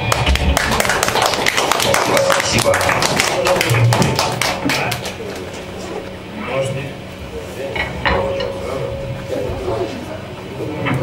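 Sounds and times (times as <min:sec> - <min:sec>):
audience clapping: 0:00.0 - 0:05.7.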